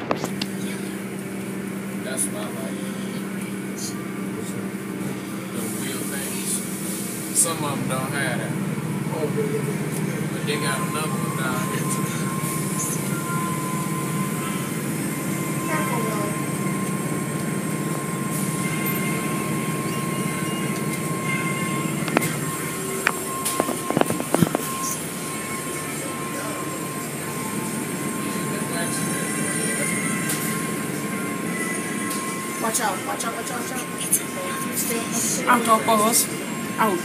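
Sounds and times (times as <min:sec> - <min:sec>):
car wash motors and pumps droning: 0:00.0 - 0:37.0
thin steady whine: 0:00.0 - 0:37.0.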